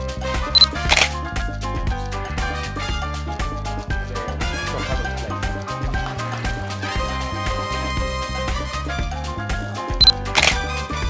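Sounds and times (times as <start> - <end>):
background music with steady beat: 0.0 - 11.0
camera shutter click: 0.6 - 1.1, 10.0 - 10.6.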